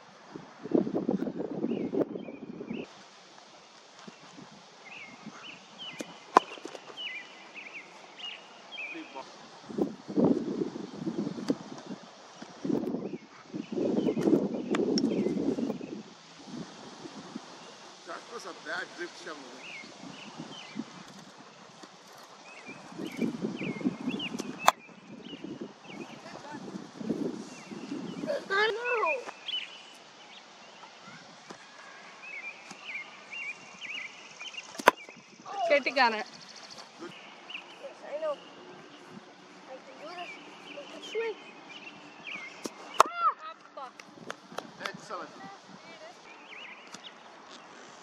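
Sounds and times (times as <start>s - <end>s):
wind buffeting microphone: 0.0s - 2.9s, 9.4s - 29.6s, 33.3s - 46.8s
cricket bat striking ball: 34.8s - 35.1s.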